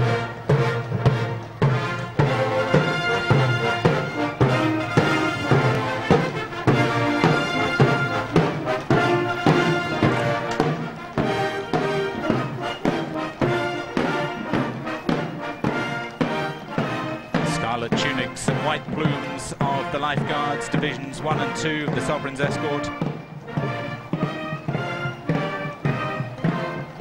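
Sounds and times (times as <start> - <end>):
kettledrums: 0.0 - 27.0
military band march: 0.0 - 27.0.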